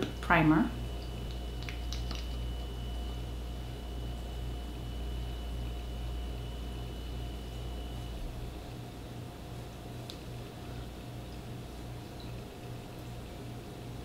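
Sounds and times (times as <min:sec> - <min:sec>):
low electrical hum: 0:00.0 - 0:14.0.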